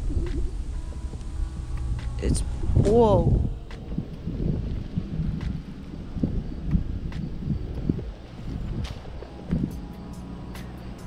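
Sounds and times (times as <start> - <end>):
low thumps: 0.0 - 11.0
wind on microphone: 0.0 - 11.0.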